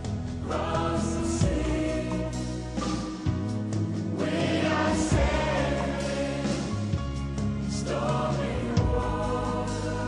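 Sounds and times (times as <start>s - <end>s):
choir singing a slow ballad: 0.0s - 10.0s
instrumental backing: 0.0s - 10.0s.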